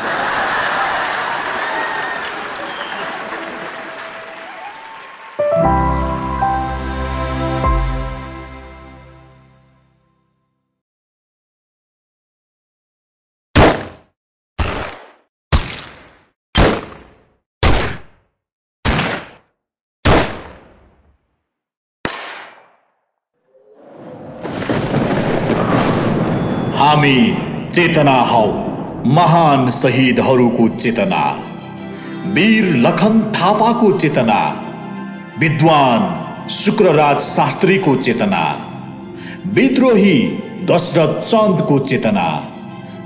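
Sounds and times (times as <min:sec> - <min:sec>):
audience applause: 0:00.0 - 0:06.5
music with deep bass: 0:05.8 - 0:09.5
cinematic impact hits: 0:24.8 - 0:30.1.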